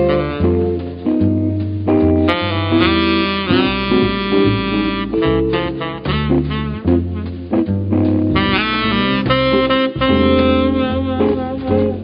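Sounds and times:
saxophone lead: 0.0 - 1.0, 2.2 - 12.0
double bass: 0.0 - 12.0
drums: 0.0 - 12.0
guitar: 0.0 - 12.0.

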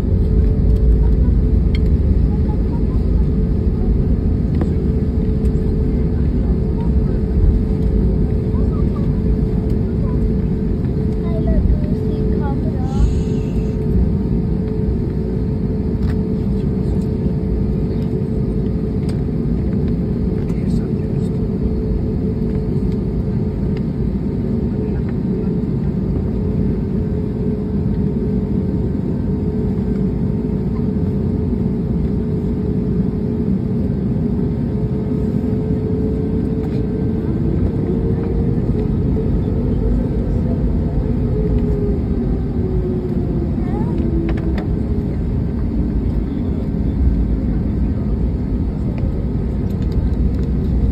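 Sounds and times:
jet engines rumbling in cabin: 0.0 - 50.9.

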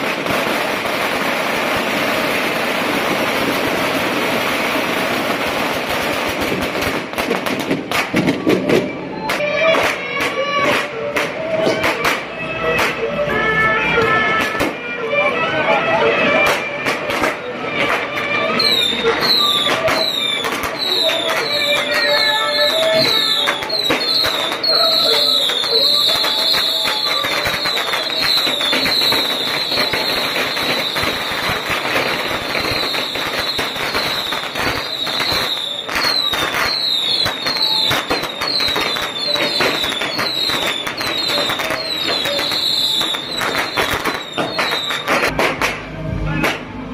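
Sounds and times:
firecrackers crackling: 0.0 - 46.9
horns playing a melody: 8.9 - 46.9.

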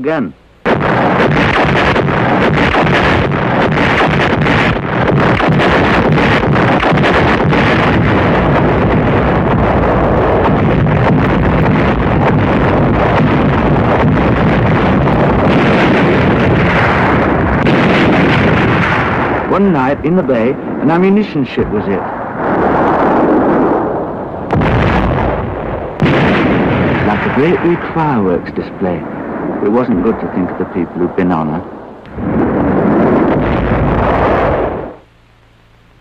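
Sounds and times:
explosions rumbling: 0.0 - 35.1
sharp cracks of shots: 0.6 - 35.0.

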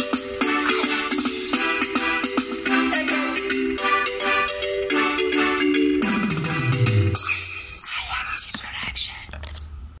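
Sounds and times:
person whispering: 7.2 - 9.5.

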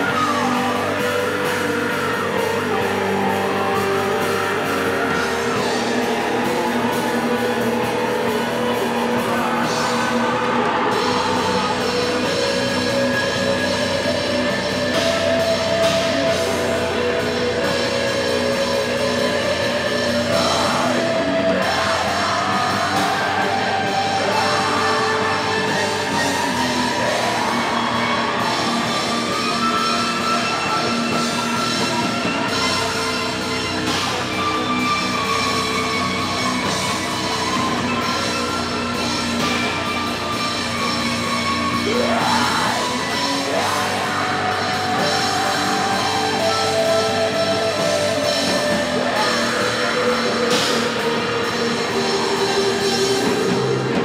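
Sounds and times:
doom metal band playing live: 0.0 - 54.0.

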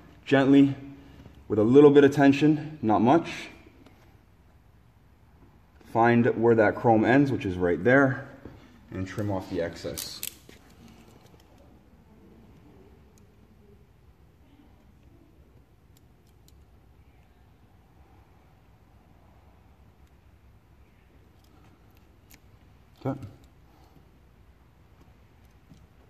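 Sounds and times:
low room hum: 0.0 - 26.0.

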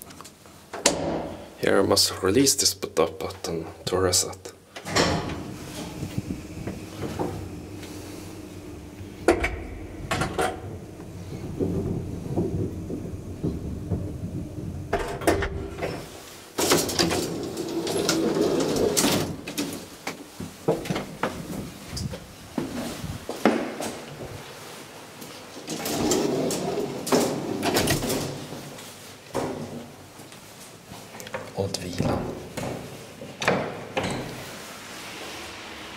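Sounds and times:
elevator door clunk: 4.8 - 19.5
lift car humming: 5.0 - 16.2.

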